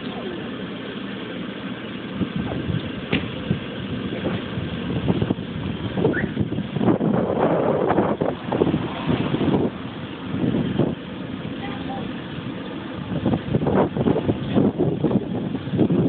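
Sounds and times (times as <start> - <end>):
street traffic: 0.0 - 16.0
wind buffeting microphone: 2.2 - 16.0.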